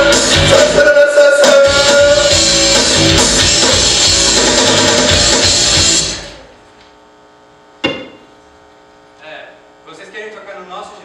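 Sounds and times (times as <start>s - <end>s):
rock music: 0.0s - 6.5s.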